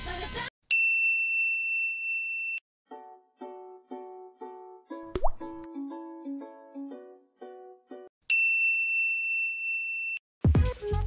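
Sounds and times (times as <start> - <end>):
high bell-like ding: 0.7 - 2.6, 8.3 - 10.2.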